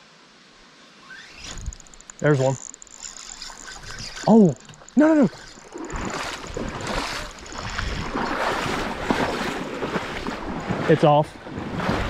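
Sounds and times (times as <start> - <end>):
river water splashing: 1.0 - 12.0
wind rumbling on microphone: 1.4 - 2.4, 3.5 - 12.0.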